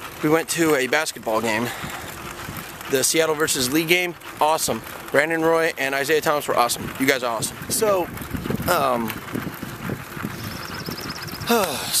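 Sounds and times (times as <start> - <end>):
wind on microphone: 6.7 - 12.0
bird trilling: 10.3 - 11.8.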